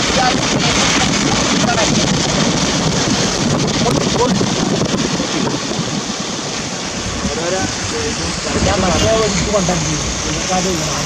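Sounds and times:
tyres hissing on wet road: 0.0 - 11.0
wind on microphone: 0.0 - 11.0
faint voices: 6.8 - 11.0.

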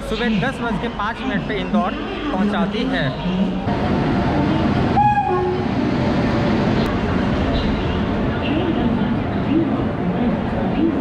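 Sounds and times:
train horn: 5.0 - 5.6.

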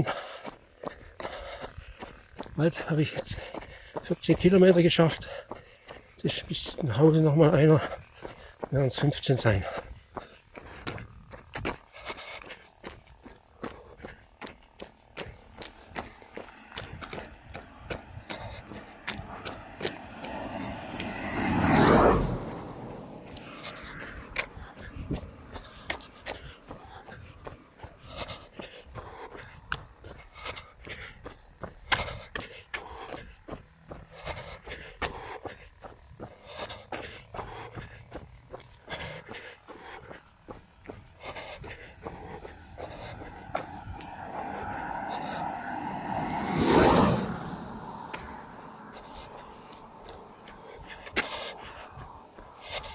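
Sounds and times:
heavy breathing: 0.0 - 52.9
runner's footsteps: 0.0 - 52.9.

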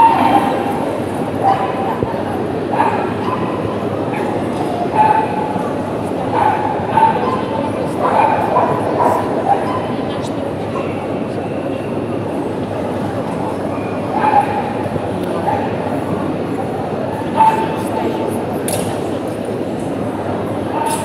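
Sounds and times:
crowd murmur: 0.0 - 21.0
dogs yipping and barking: 2.7 - 5.6, 6.3 - 10.0, 13.8 - 14.9.

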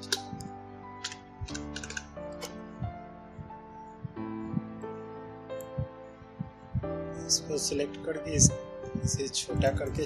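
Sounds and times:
soft background music: 0.0 - 10.0
computer keyboard keystrokes: 1.0 - 2.5.

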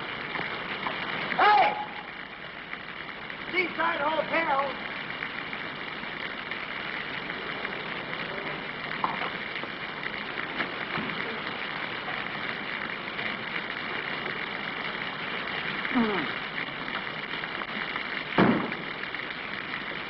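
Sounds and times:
heavy rain on street: 0.0 - 20.0.

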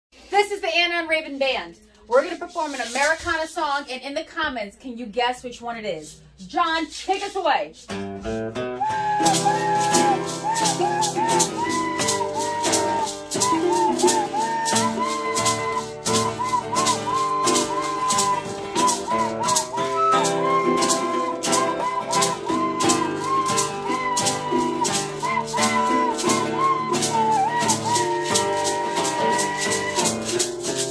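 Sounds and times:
maraca shaking: 2.2 - 3.5, 6.0 - 30.9
strummed ukulele and guitar: 7.9 - 30.9
recorder melody: 8.6 - 30.9.

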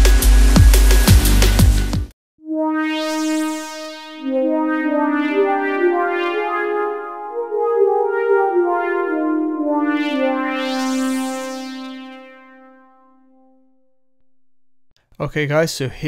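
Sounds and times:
synth pad playing slow chords: 2.5 - 14.5.

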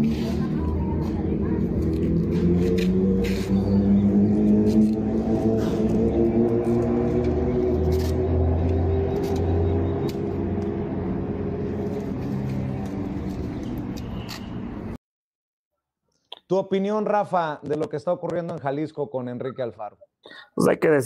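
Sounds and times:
vehicle engine droning: 0.0 - 14.1.

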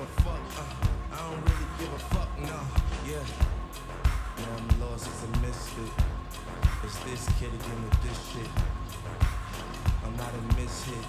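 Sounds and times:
heavy kick drum: 0.0 - 11.0
steady high tone: 0.0 - 11.0
synthesizer lines: 0.0 - 11.0.

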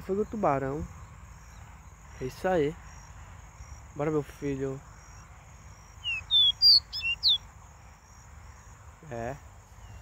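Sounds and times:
small bird singing whistled notes: 5.9 - 7.4.

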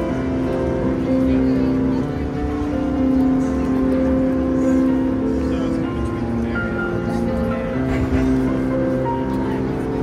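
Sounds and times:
crowd chatter: 0.0 - 10.0
piano chords: 0.0 - 10.0.

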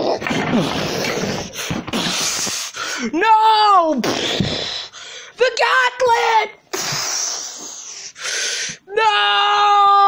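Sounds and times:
child's hissing mouth noises: 0.8 - 2.8, 6.7 - 8.2.

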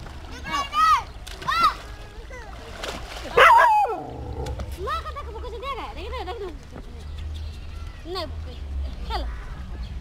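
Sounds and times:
children splashing in water: 0.0 - 5.8
loud splash: 2.6 - 4.2.

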